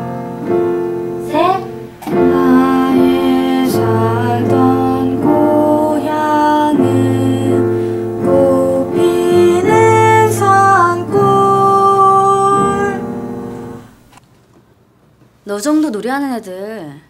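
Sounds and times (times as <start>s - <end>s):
electric keyboard: 0.0s - 14.0s
girl singing: 1.2s - 13.2s.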